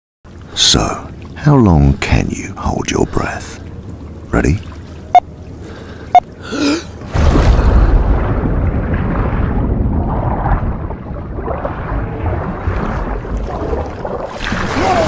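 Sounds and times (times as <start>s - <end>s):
underwater rushing and bubbling: 0.3s - 15.0s
plunge into water: 7.0s - 15.0s.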